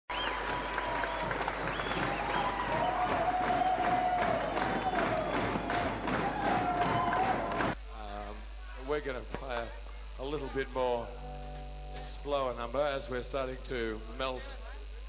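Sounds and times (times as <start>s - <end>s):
audience applauding: 0.1s - 7.8s
voices calling out: 2.0s - 7.8s.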